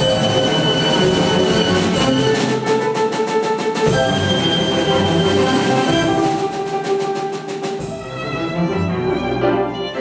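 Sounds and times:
violin-led ensemble playing: 0:00.0 - 0:10.0.

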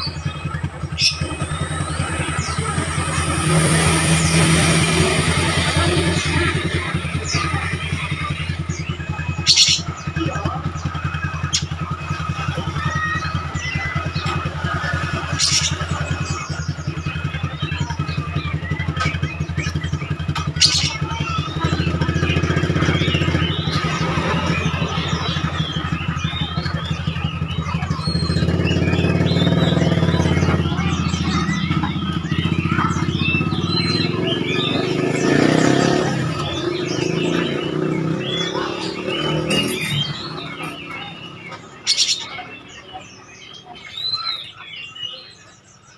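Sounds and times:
motorcycle engine idling: 0:00.0 - 0:45.9
songbirds chirping and whistling: 0:00.0 - 0:45.9.

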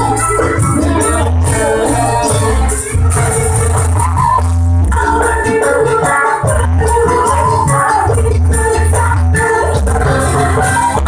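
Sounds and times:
heavy steady bass line: 0:00.0 - 0:11.0
loud live dance music: 0:00.0 - 0:11.0.

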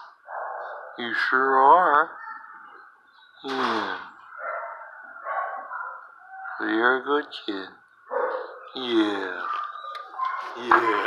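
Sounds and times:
dogs barking: 0:00.0 - 0:01.2, 0:04.2 - 0:07.0, 0:08.0 - 0:11.0.

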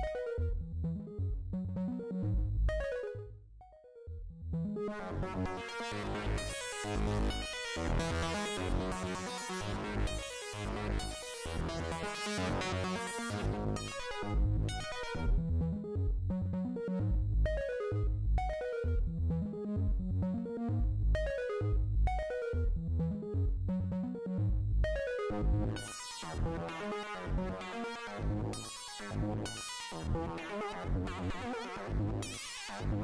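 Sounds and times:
synthesizer arpeggio: 0:00.0 - 0:28.7
pulsing synth bass line: 0:00.0 - 0:33.0.

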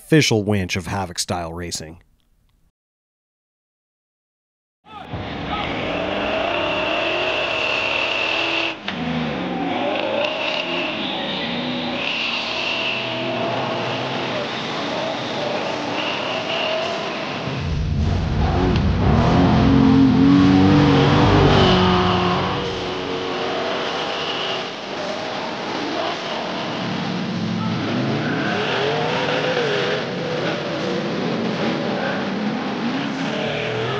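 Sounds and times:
buggy engine revving hard: 0:05.4 - 0:33.9.

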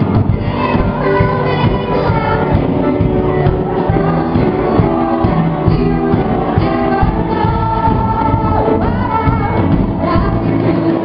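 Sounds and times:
electric bass: 0:00.0 - 0:11.0
voices singing along: 0:00.0 - 0:11.0
woman singing into a microphone: 0:00.0 - 0:11.0.

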